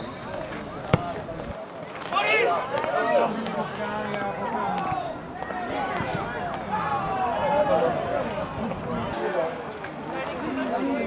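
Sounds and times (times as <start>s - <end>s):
football being kicked: 0.9s - 1.2s.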